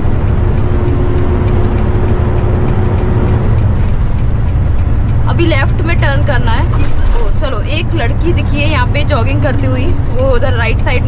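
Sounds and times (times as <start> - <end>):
road noise: 0.0 - 11.0
truck engine rumble: 0.0 - 11.0.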